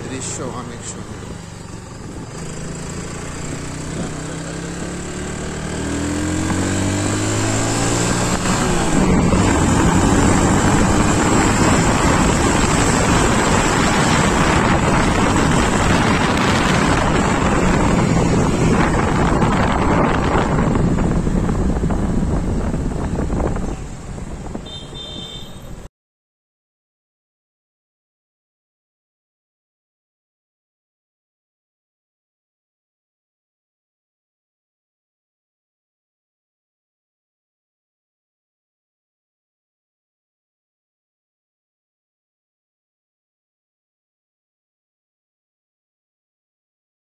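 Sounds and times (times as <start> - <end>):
scooter engine pulling away: 0.2 - 24.1
wind noise: 5.8 - 25.9.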